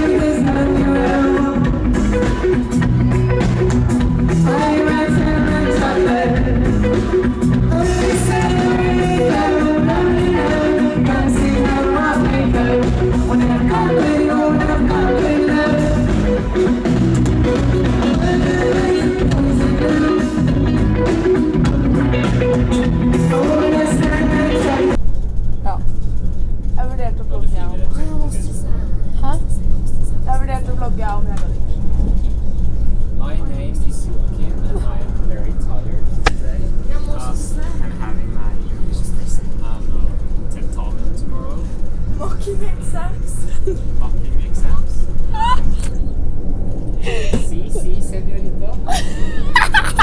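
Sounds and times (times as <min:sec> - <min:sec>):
distant live rock band: 0:00.0 - 0:26.8
person singing: 0:04.3 - 0:16.6, 0:18.0 - 0:21.4, 0:23.1 - 0:25.0
train rumbling inside carriage: 0:25.0 - 0:50.0.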